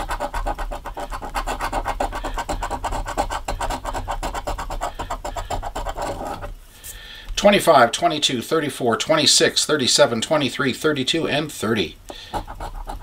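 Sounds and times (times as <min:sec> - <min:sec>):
coin scratching lottery ticket: 0:00.0 - 0:06.5, 0:12.3 - 0:13.0.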